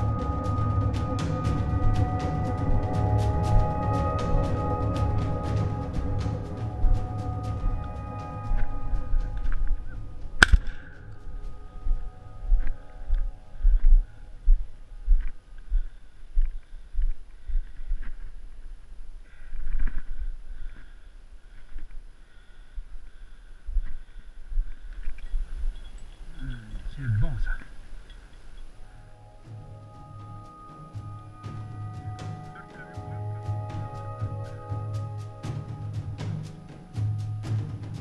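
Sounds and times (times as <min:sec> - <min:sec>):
background music: 0:00.0 - 0:15.2, 0:28.8 - 0:38.0
footsteps on dirt track: 0:08.5 - 0:22.1.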